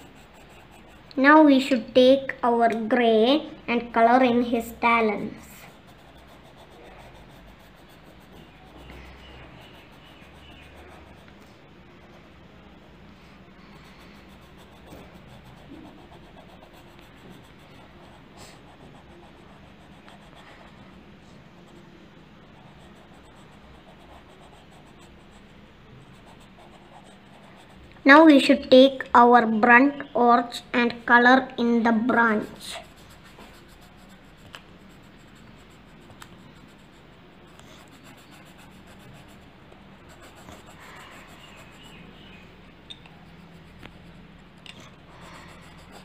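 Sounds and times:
pencil scratching on paper: 0:00.0 - 0:01.8, 0:04.7 - 0:11.4, 0:12.0 - 0:28.3, 0:32.3 - 0:42.4, 0:43.2 - 0:46.0.

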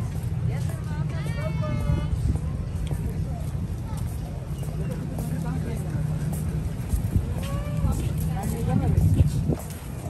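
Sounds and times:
faint voices of passers-by: 0:00.0 - 0:10.0.

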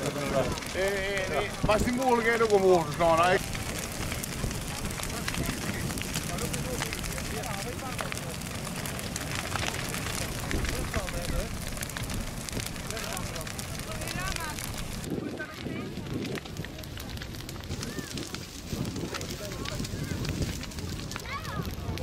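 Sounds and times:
bonfire crackling and roaring: 0:00.0 - 0:22.0
faint voices: 0:00.0 - 0:22.0.

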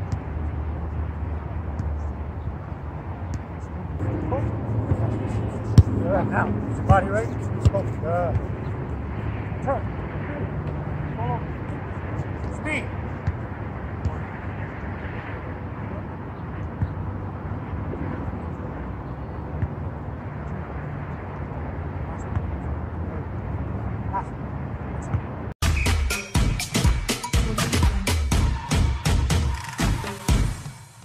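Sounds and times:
steady low rumble: 0:00.0 - 0:25.6
electronic dance music: 0:25.6 - 0:31.0.

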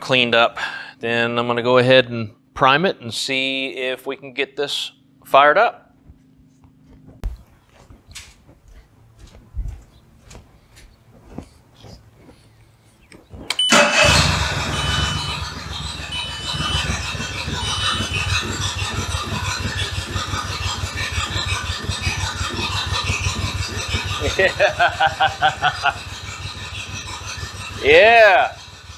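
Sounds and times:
short high beeps: 0:13.5 - 0:18.4
outboard motor running: 0:13.7 - 0:28.9.

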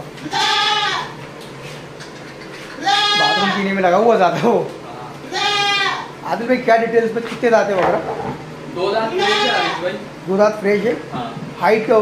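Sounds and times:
goat bleating: 0:00.2 - 0:01.2, 0:02.8 - 0:03.7, 0:05.2 - 0:06.2, 0:09.0 - 0:09.9.

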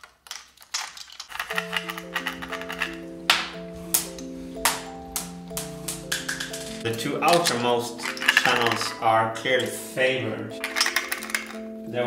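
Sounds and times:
steel marbles clicking and rattling: 0:00.0 - 0:09.1, 0:10.6 - 0:11.7
background music of held notes: 0:01.3 - 0:12.0.

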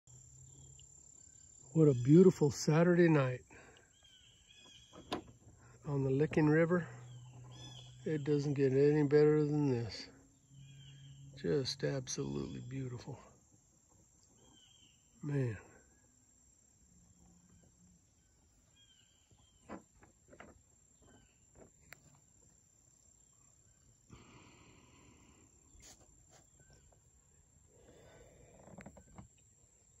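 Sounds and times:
distant chirps: 0:00.1 - 0:19.8
faint insect-like hum: 0:00.1 - 0:30.0
soft knocks and rustles: 0:19.3 - 0:22.2.

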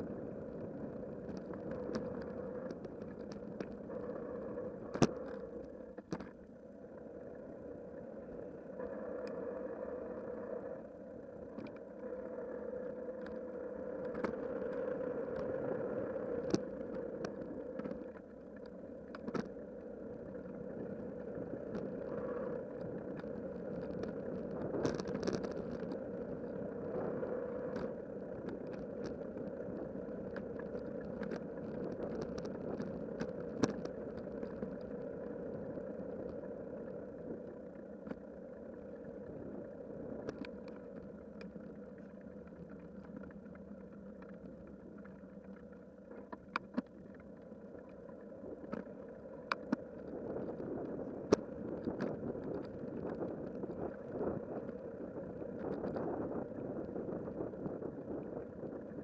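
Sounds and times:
bicycle tyre road noise: 0:08.4 - 0:59.0.

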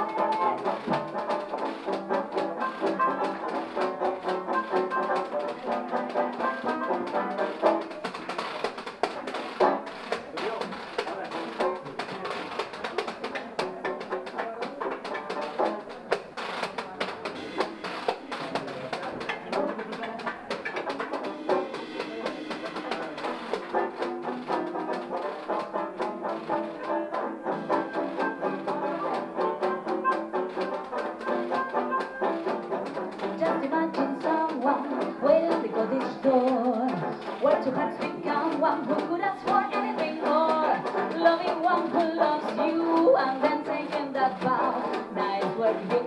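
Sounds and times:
harmonica lead: 0:00.0 - 0:10.1
banjo: 0:00.0 - 0:46.0
hand percussion: 0:00.0 - 0:46.0.

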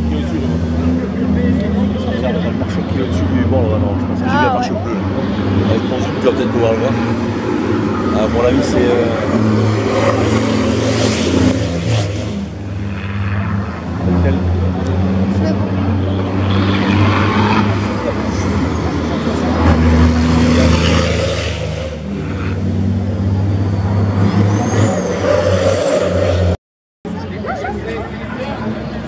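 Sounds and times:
trucks passing at speed: 0:00.0 - 0:29.0.

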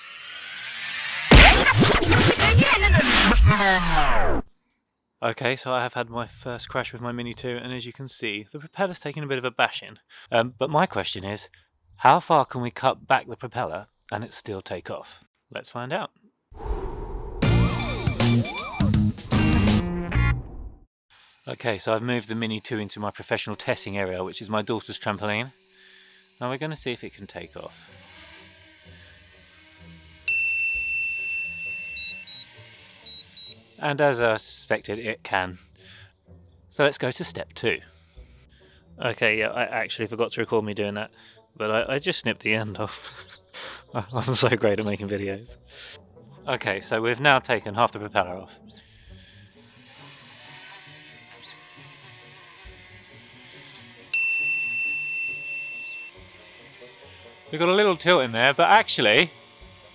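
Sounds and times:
drone propellers hovering: 0:00.0 - 0:01.4
bright ding chime: 0:30.3 - 0:32.4, 0:54.2 - 0:56.1
short high beeps: 0:31.1 - 0:32.5, 0:54.9 - 0:56.1
faint background music: 0:32.6 - 0:54.2.

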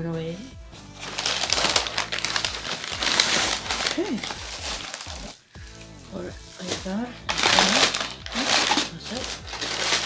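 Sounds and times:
packaging crinkling and rustling: 0:01.0 - 0:05.4, 0:06.5 - 0:10.0.

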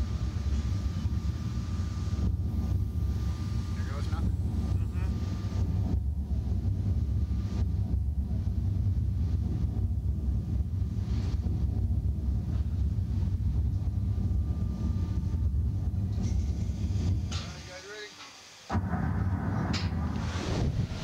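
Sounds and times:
low rumble: 0:00.0 - 0:17.4, 0:18.7 - 0:21.0.

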